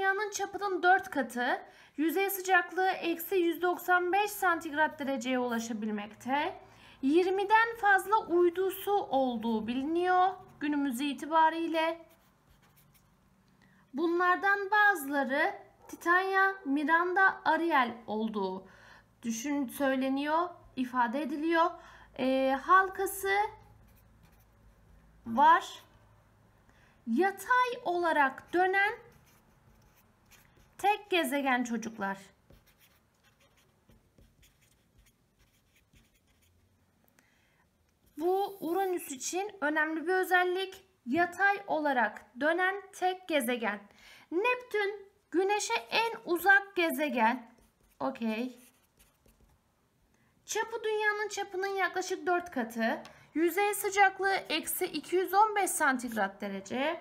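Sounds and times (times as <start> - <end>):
marker writing on paper: 11.9 - 13.2, 23.6 - 24.6, 28.4 - 31.2, 32.3 - 36.7, 47.6 - 49.6.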